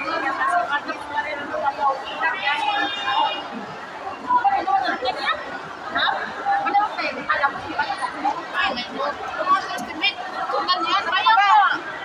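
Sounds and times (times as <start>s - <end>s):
women talking: 4.2s - 12.0s.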